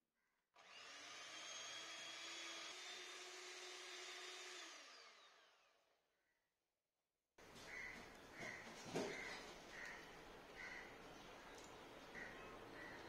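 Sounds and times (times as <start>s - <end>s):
electric hand mixer whining: 0.6s - 5.8s.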